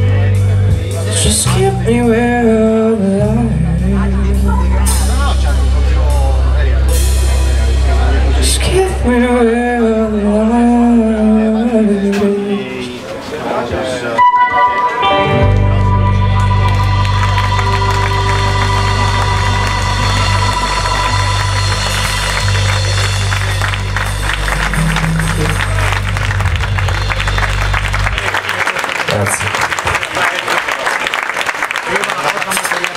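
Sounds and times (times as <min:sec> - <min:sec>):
blues-rock band holding a chord: 0:00.0 - 0:13.0, 0:14.2 - 0:29.0
audience applause: 0:15.6 - 0:32.9
crashing drums and cymbals: 0:17.3 - 0:27.9.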